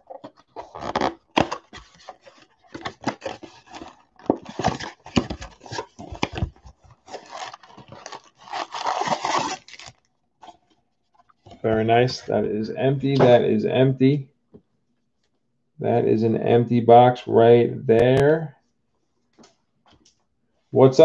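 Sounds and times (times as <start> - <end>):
cardboard box tearing open: 0.6 - 10.0.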